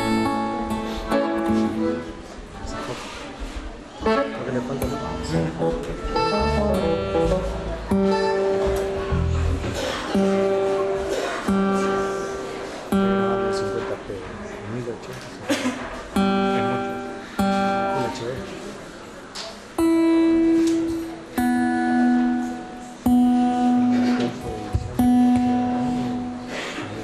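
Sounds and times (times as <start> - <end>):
acoustic guitar strumming: 0.0 - 2.9, 4.0 - 14.1, 16.1 - 18.8, 19.8 - 27.0
bass: 4.8 - 9.8.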